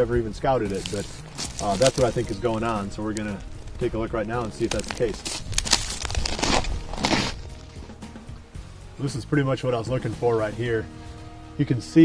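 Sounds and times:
quiet background music: 0.0s - 12.0s
footsteps crunching in snow: 0.4s - 8.2s.

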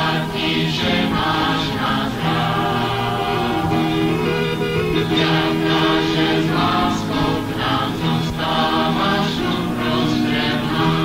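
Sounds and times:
choir singing sustained chords: 0.0s - 11.0s.

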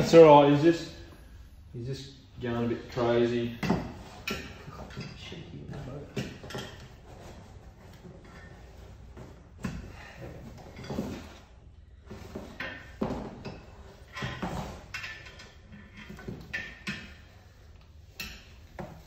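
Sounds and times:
objects knocking and scraping: 3.5s - 19.0s.

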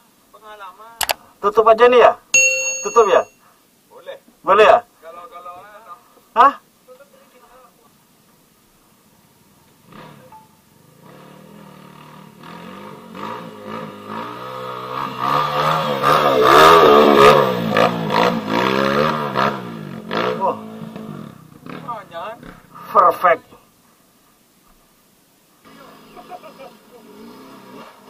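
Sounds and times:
dirt bike engine revving: 9.8s - 22.1s, 25.6s - 28.0s.

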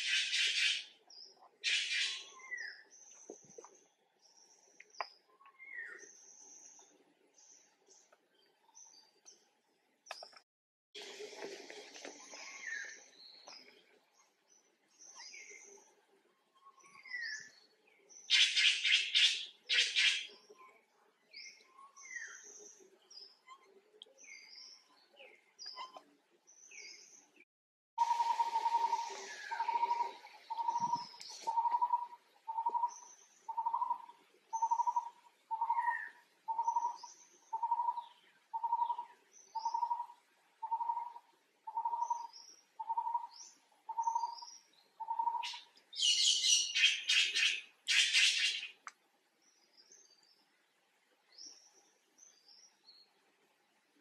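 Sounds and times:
birds chattering: 28.0s - 48.8s.

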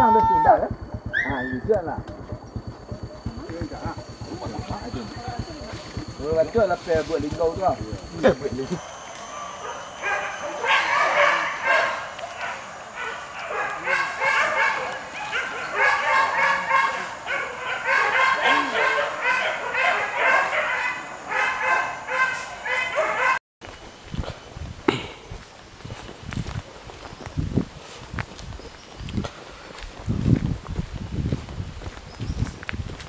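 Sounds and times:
dogs yelping and barking: 0.0s - 6.2s, 8.0s - 23.4s.

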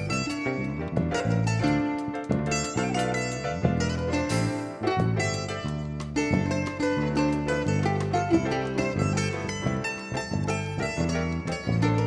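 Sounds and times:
instrumental band playing: 0.0s - 12.0s.

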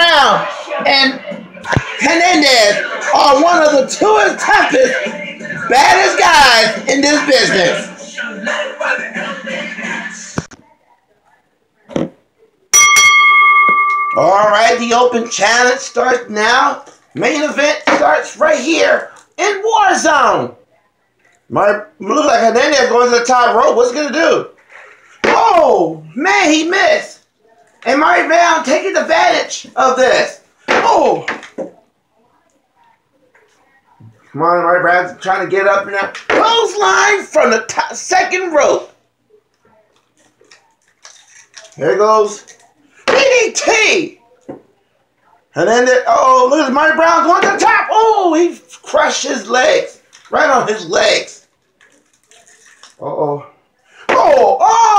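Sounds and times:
wrestling ring bell ringing: 12.7s - 16.4s.

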